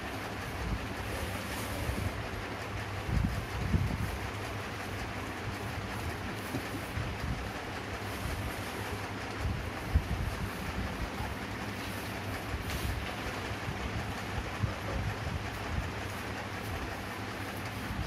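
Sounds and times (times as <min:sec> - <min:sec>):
low rumble and hiss: 0:00.0 - 0:18.0.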